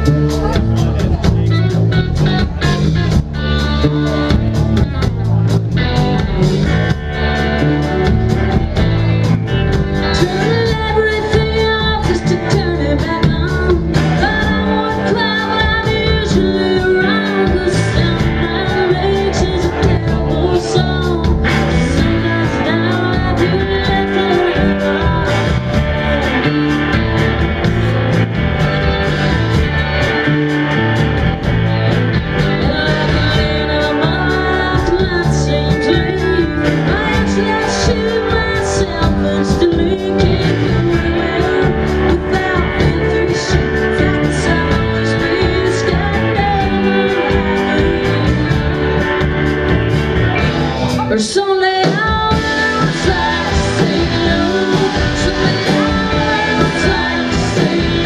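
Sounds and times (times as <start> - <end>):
bass guitar: 0.0 - 58.0
drums: 0.0 - 58.0
electric guitars: 0.0 - 58.0
woman singing: 9.7 - 27.9, 31.9 - 49.5, 51.0 - 58.0.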